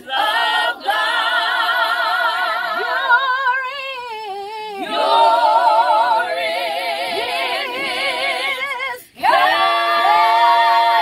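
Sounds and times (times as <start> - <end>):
women singing a cappella: 0.0 - 11.0.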